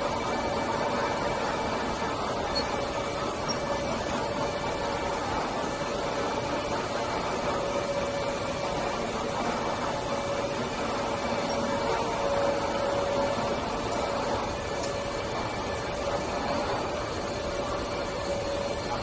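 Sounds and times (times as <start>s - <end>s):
constant machinery tones: 0.0s - 19.0s
ventilation air rush: 0.0s - 19.0s.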